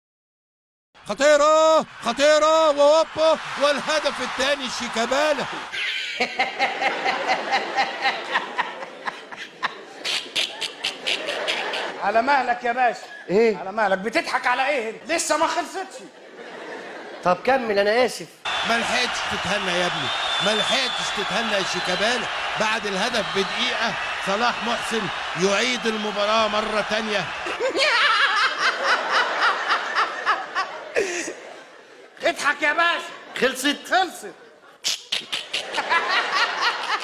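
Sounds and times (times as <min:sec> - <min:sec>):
man giggling: 0:06.0 - 0:12.0, 0:27.5 - 0:31.5
man laughing hard: 0:06.0 - 0:12.0, 0:27.5 - 0:31.5.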